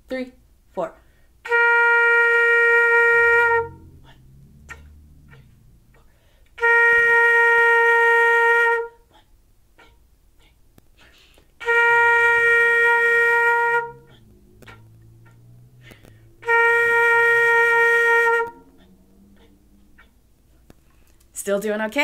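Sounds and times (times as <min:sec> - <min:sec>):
flute playing long notes: 0:01.4 - 0:05.8, 0:06.6 - 0:09.0, 0:11.6 - 0:20.1.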